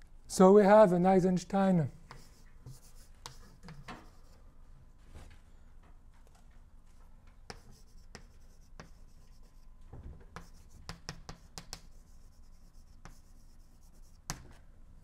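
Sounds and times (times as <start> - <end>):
chalk on blackboard: 2.0 - 4.4, 7.5 - 9.7, 10.3 - 14.6.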